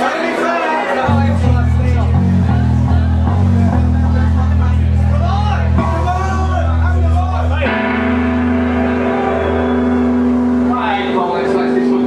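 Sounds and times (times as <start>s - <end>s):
low bass drone: 1.1s - 12.0s
distorted electric guitar chord: 5.7s - 12.0s.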